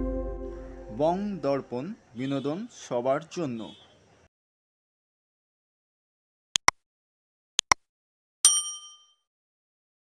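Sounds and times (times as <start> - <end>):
bright bell ding: 8.5 - 9.2.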